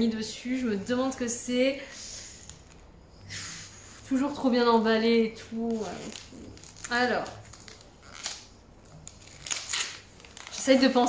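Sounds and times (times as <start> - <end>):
wrapping paper rustling: 5.5 - 11.0.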